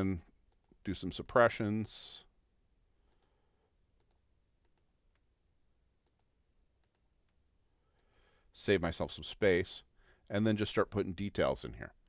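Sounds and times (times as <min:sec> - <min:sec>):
computer mouse clicks: 0:03.1 - 0:03.3, 0:04.0 - 0:05.2, 0:06.0 - 0:07.1.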